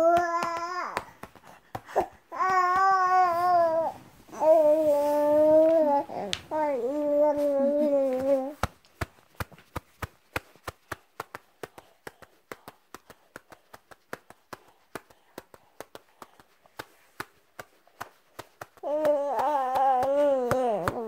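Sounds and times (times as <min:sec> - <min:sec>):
baby crying: 0:00.0 - 0:01.1, 0:01.9 - 0:08.6, 0:18.8 - 0:21.0
soft patting: 0:00.0 - 0:21.0.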